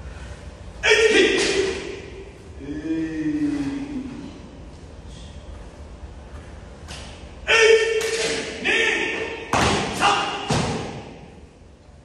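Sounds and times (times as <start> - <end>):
karate strikes on foam mats: 9.5 - 11.3.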